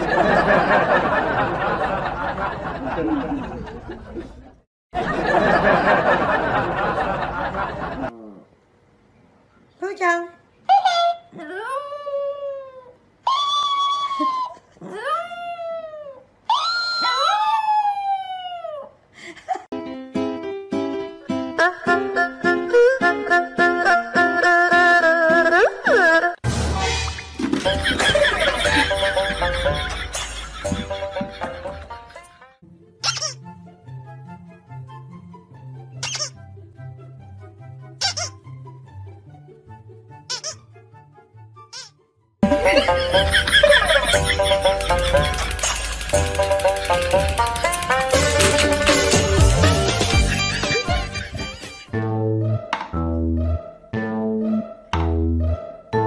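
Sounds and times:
squeaky dog toy squeaking: 0:33.0 - 0:33.4, 0:36.0 - 0:36.4, 0:38.0 - 0:38.4, 0:40.3 - 0:40.7, 0:41.6 - 0:42.0
background music with bass line: 0:46.2 - 0:56.0.

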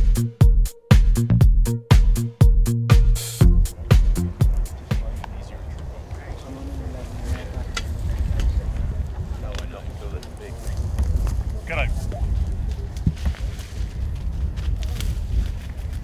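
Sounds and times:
distant people talking: 0:04.5 - 0:10.8
wind rumble on microphone: 0:04.5 - 0:16.0
rustles and clicks: 0:05.8 - 0:16.0.

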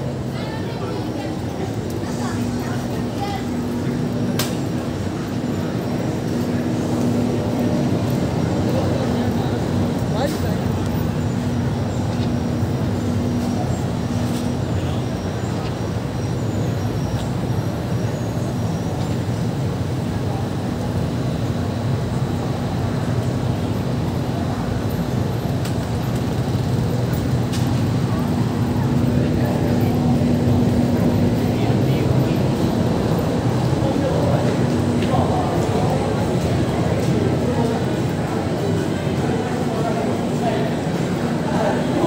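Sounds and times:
car and motorbike traffic: 0:00.0 - 0:42.0
passers-by talking: 0:00.0 - 0:42.0
steady low hum: 0:00.0 - 0:42.0.

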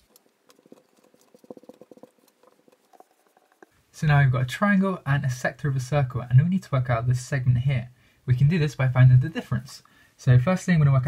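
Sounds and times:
marker pen writing on whiteboard: 0:00.0 - 0:03.7.

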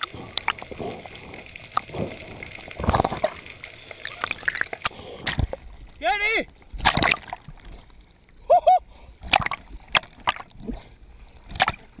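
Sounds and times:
underwater gurgling and trickling: 0:00.0 - 0:12.0.

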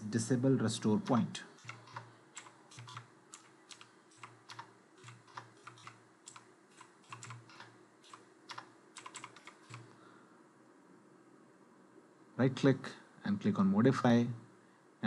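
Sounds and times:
faint keyboard keystrokes: 0:01.0 - 0:10.0.

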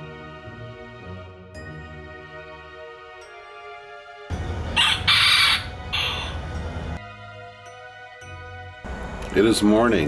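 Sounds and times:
soft background music: 0:00.0 - 0:10.0
rooster crowing: 0:04.7 - 0:06.5.

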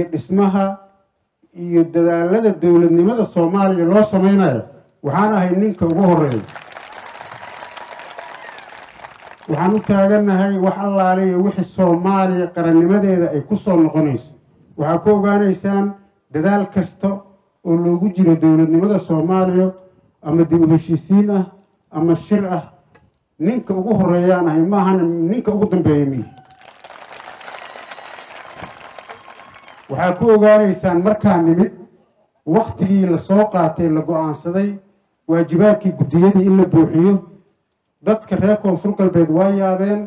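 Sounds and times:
audience applauding: 0:05.8 - 0:10.1, 0:26.3 - 0:30.0.

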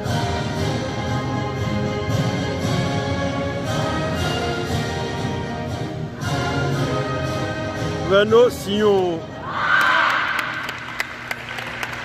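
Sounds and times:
national anthem music: 0:00.0 - 0:09.6
sparse applause: 0:09.6 - 0:12.0.

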